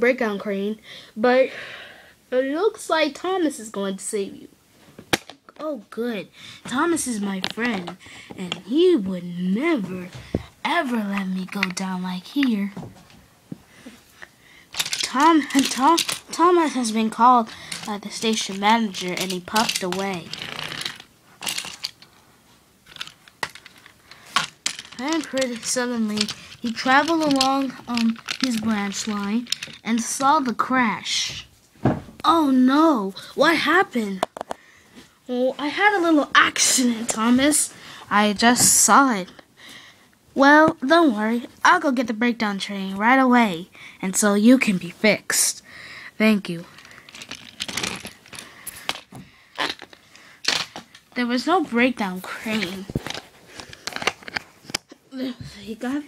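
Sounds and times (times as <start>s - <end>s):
plastic track scraping rustle: 14.8s - 21.9s
toy train clicks and knocks: 14.8s - 22.0s, 22.9s - 30.2s
light handling clicks and rustles: 22.8s - 30.2s, 46.7s - 51.2s.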